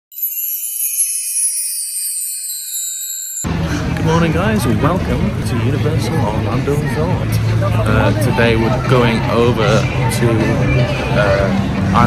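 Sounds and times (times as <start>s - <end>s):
shimmering bell-like chimes: 0.1s - 3.5s.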